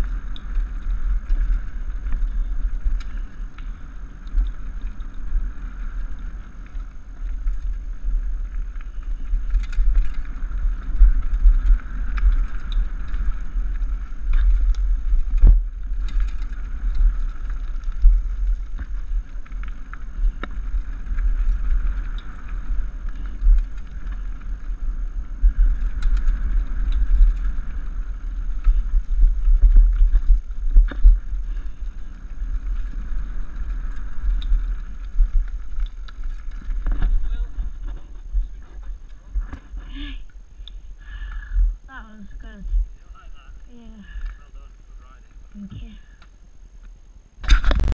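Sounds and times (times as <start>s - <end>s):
bike rattles and clicks: 0.0s - 41.9s, 42.7s - 47.9s
tyres over loose stones: 0.0s - 41.9s
wind buffeting microphone: 0.0s - 44.7s.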